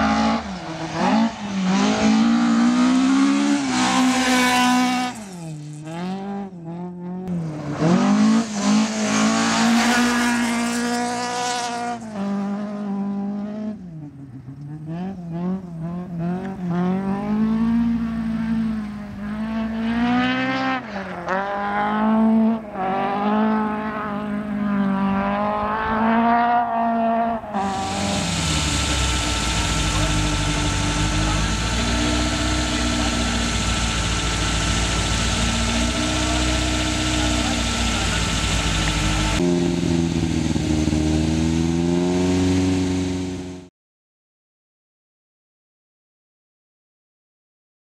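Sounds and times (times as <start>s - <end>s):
rally car engine revving: 0.0s - 43.7s
hissy wavering drone: 27.6s - 39.4s.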